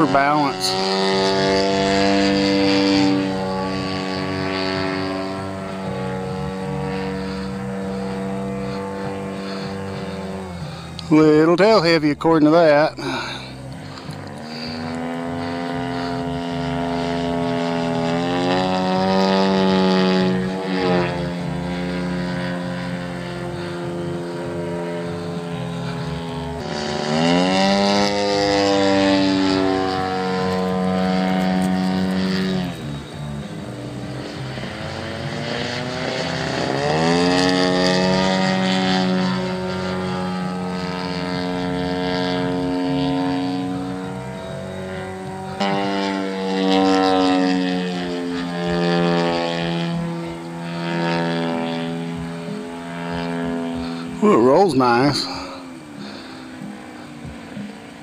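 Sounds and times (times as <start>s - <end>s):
model plane engine droning: 0.0s - 58.0s.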